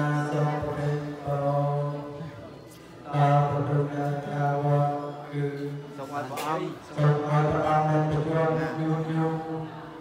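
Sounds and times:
monk chanting in monotone: 0.0 - 10.0.

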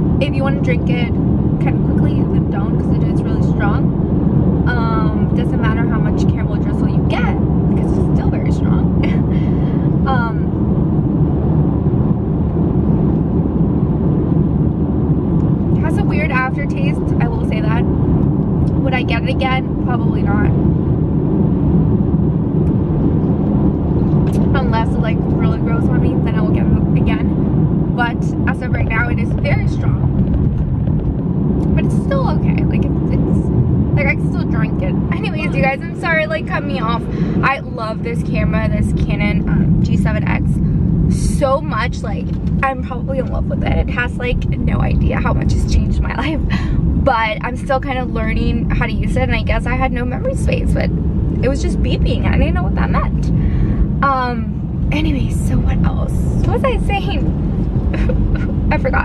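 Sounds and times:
car road and engine noise: 0.0 - 59.0
person speaking: 24.3 - 27.2, 28.0 - 30.1, 34.0 - 40.5, 41.2 - 53.4, 54.0 - 57.3, 58.0 - 59.0.

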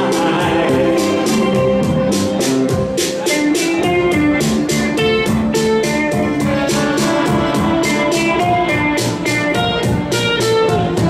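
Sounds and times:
electric guitar melody: 0.0 - 11.0
steady ticking beat: 0.0 - 11.0.

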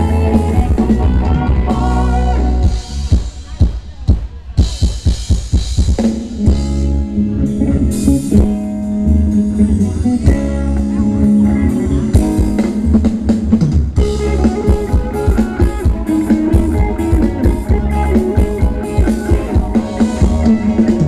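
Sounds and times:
live band playing dance music: 0.0 - 21.0.

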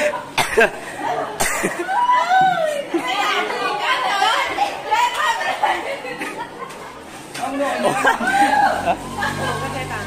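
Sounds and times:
person coughing: 0.4 - 0.8, 1.4 - 1.8.

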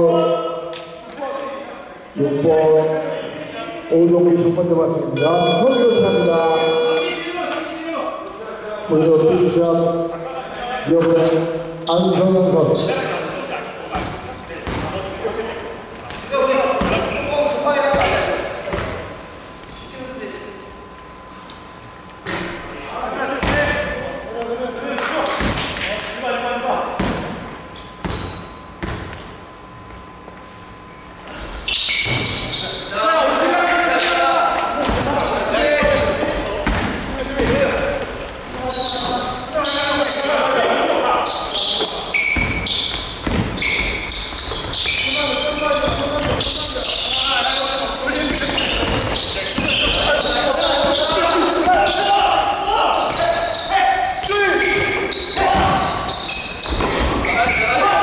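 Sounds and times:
sneakers squeaking on floor: 3.5 - 4.4, 9.2 - 10.2, 11.0 - 13.2, 13.9 - 20.0, 27.0 - 30.7, 31.3 - 33.0, 34.7 - 58.0
basketball bouncing: 14.0 - 15.0, 28.0 - 29.2, 42.3 - 45.0, 48.2 - 50.1
players calling out: 31.4 - 58.0.

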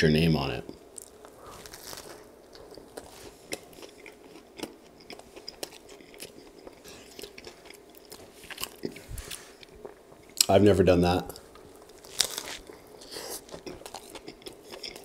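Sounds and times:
person chewing a sandwich: 0.7 - 10.5, 11.3 - 15.0
crisp crunches and clicks: 1.0 - 3.2, 11.9 - 12.8.

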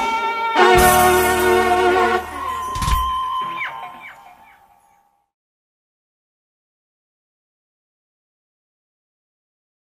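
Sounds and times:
live band held note: 0.0 - 4.4.

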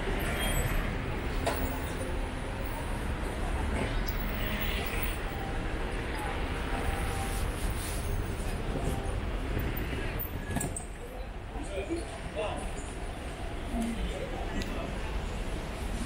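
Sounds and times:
faint voices of passersby: 0.0 - 16.0
road traffic rumble: 0.0 - 16.0.

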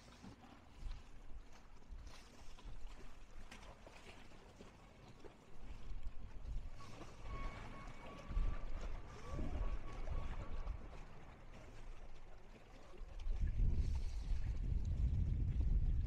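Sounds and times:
wind gusting across microphone: 13.4 - 16.0.

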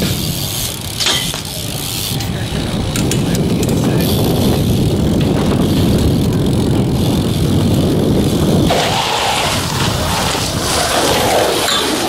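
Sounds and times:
bike tyres rolling on concrete: 0.0 - 12.0
wind buffeting microphone: 0.0 - 12.0.

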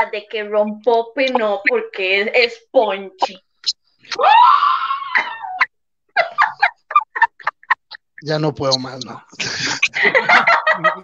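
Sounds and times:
person squealing with laughter: 4.1 - 8.0.

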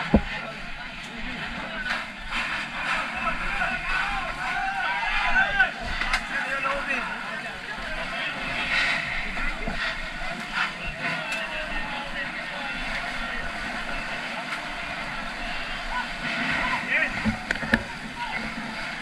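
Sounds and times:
water rushing through hoses: 0.0 - 19.0
sharp knocks: 0.1 - 0.3
firefighters calling out: 0.2 - 9.2, 9.8 - 19.0
pump engine drone: 5.7 - 19.0.

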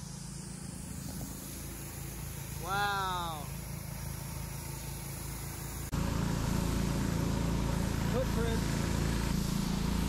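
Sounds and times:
machine engine drone: 0.0 - 10.0
spray hissing: 0.0 - 10.0.

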